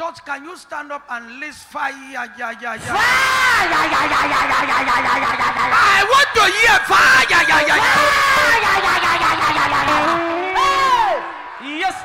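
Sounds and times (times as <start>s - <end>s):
congregation shouting: 2.8s - 12.0s
man's long drawn-out cry: 7.0s - 11.2s.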